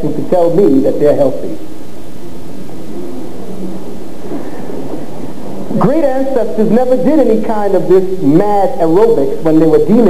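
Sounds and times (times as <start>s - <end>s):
video tape hiss: 0.0s - 10.0s.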